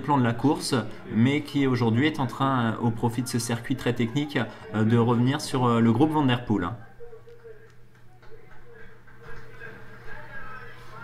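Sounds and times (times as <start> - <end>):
faint muffled voices: 0.0 - 11.0.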